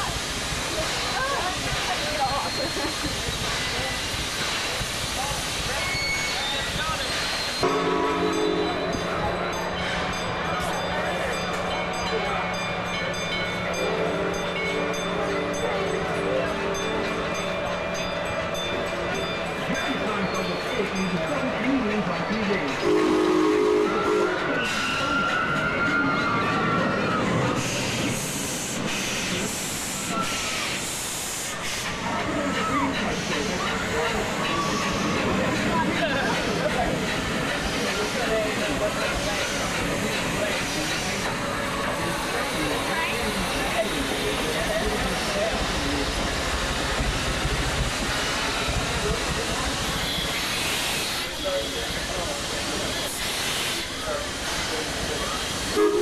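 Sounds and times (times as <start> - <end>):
train running: 0.0 - 56.0
steam locomotive whistle: 7.4 - 9.0, 22.8 - 26.1, 55.7 - 56.0.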